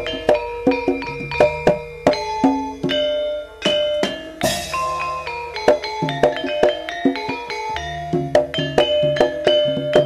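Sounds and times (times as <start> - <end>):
metallophones ringing notes: 0.0 - 10.0.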